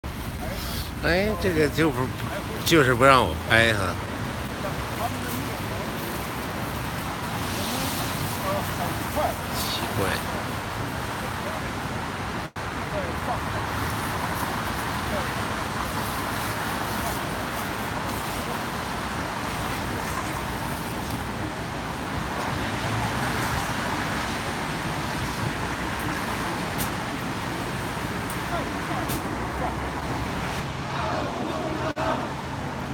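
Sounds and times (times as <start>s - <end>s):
city traffic noise: 0.0s - 32.9s
people talking indistinctly: 0.3s - 6.2s, 7.5s - 10.3s.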